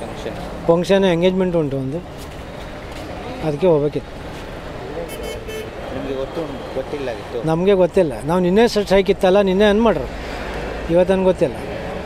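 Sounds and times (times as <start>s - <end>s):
street traffic noise: 0.0s - 12.0s
vehicle horn toot: 5.1s - 5.7s.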